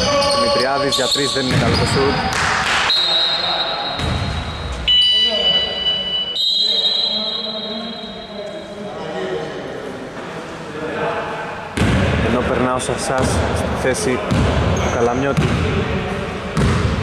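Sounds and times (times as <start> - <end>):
players' voices: 0.0 - 17.0
basketball bouncing on wooden floor: 16.6 - 17.0.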